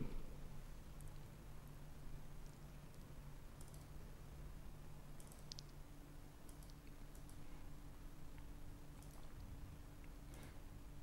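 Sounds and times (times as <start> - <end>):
low steady hum: 0.0 - 11.0
faint scattered clicks: 2.4 - 4.0, 5.1 - 5.8, 6.4 - 7.4, 8.3 - 9.4.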